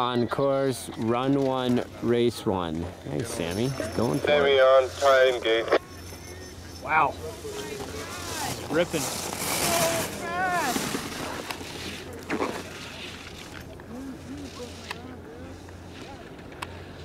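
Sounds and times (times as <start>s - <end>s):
spectators' voices: 0.0s - 16.6s
faint distant voices: 0.0s - 17.0s.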